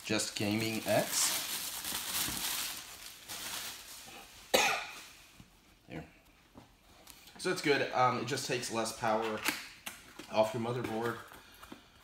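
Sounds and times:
plastic wrap crinkling: 0.0s - 5.2s
sudden cough: 4.5s - 5.1s.

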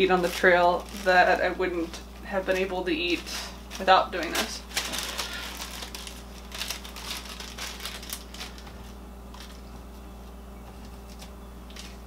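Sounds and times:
plastic bag crinkling: 0.0s - 12.0s
steady low hum: 0.0s - 12.0s.

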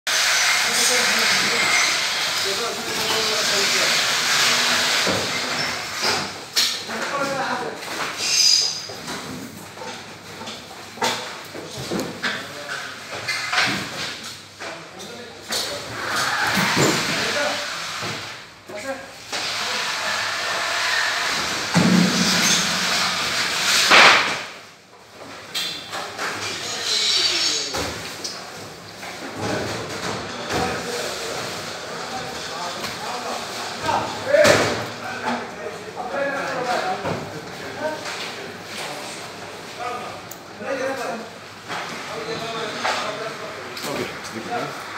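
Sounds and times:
room noise: 0.1s - 44.9s.

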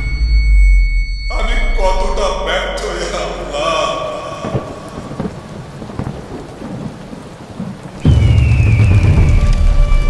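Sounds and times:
high tone gliding down: 0.0s - 5.5s
thunderclap rumbling: 0.4s - 10.0s
steady rain: 1.5s - 10.0s.

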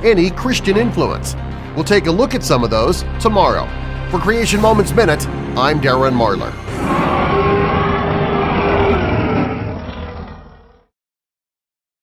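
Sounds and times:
loud roar: 6.6s - 10.9s.

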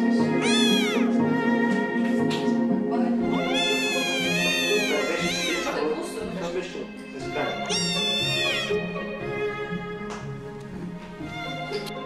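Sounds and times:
soft background music: 0.0s - 12.0s
kitten meowing: 0.3s - 1.1s, 3.3s - 6.0s, 7.4s - 8.8s.

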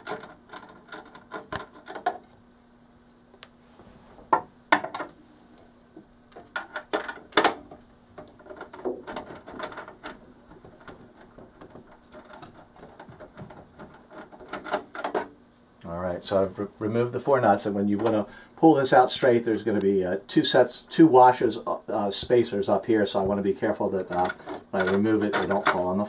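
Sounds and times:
faint low hum: 0.0s - 26.0s
metal clicks and knocks: 6.3s - 15.3s.

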